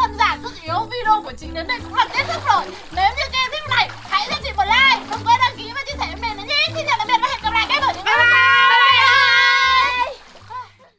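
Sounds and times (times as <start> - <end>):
background music with stepping bass: 0.0 - 10.6
children shouting at play: 3.4 - 10.8.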